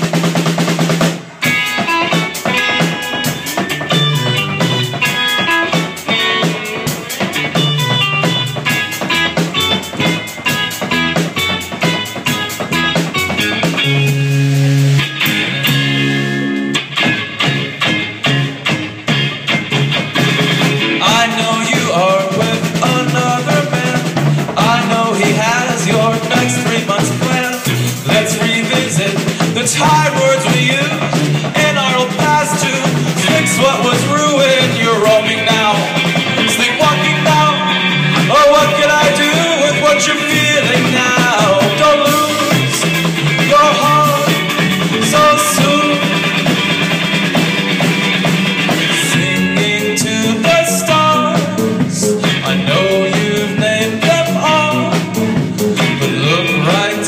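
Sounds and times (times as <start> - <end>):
electric guitars: 0.0 - 57.0
live rock band playing: 0.0 - 57.0.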